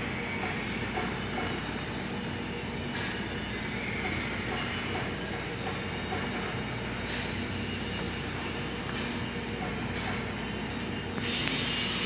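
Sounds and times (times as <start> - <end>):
arc welding hiss and crackle: 0.0 - 12.0
welding machines humming: 0.0 - 12.0.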